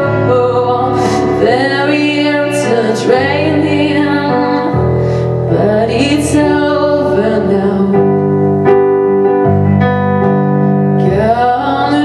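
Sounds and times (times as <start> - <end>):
digital piano playing chords: 0.0 - 12.0.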